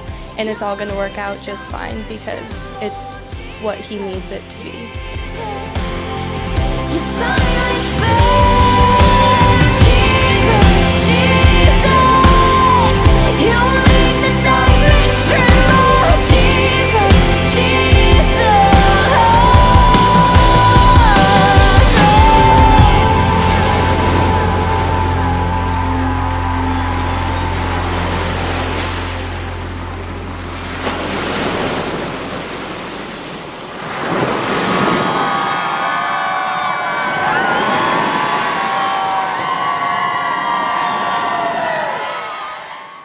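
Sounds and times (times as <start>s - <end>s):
surf washing onto beach: 21.6s - 42.0s.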